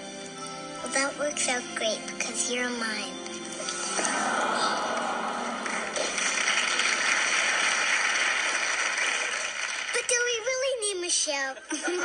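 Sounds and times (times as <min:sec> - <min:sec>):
studio audience applauding: 0:04.0 - 0:10.4.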